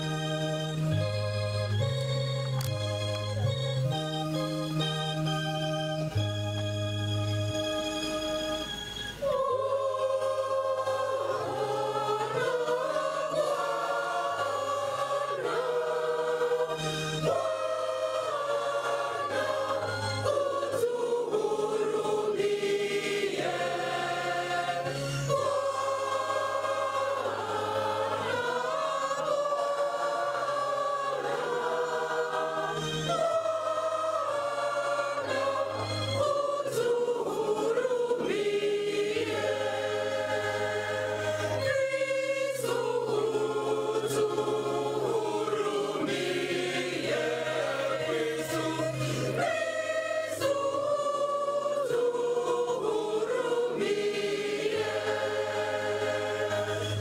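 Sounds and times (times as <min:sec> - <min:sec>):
church choir singing a hymn: 0:00.0 - 0:57.0.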